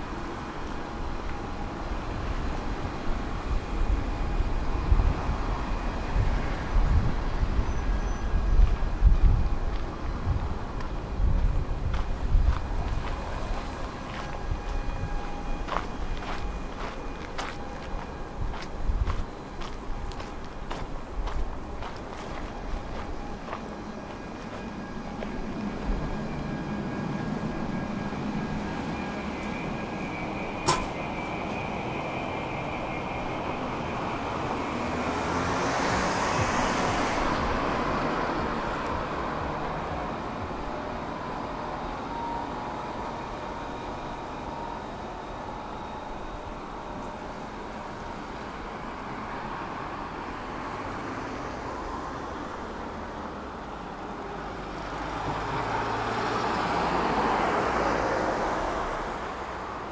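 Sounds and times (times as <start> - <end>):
car passing: 9.1 - 59.9
footsteps on paving stones: 10.8 - 14.8, 15.6 - 25.4
sharp click: 30.7 - 31.0.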